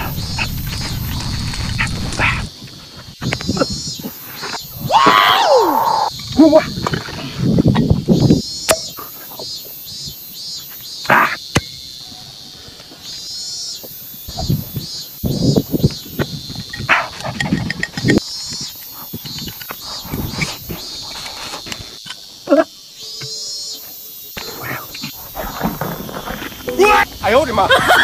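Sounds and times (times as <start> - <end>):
insects chirping: 0.0 - 28.0.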